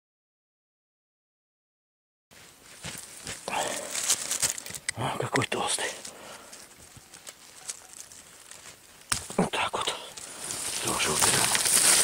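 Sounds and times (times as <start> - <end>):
rustling of plant stems: 2.4 - 9.4, 10.1 - 12.0.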